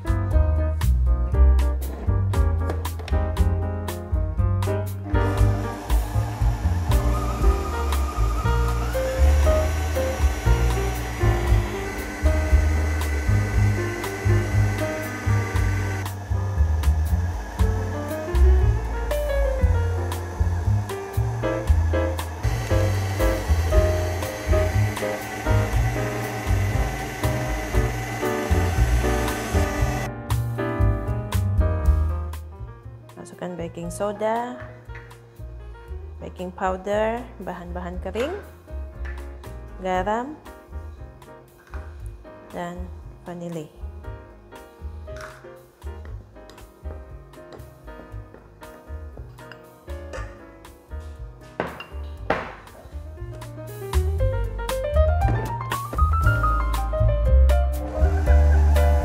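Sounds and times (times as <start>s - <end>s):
background piano music: 0.0s - 59.0s
electric stand mixer whirring: 5.2s - 30.1s, 57.7s - 59.0s.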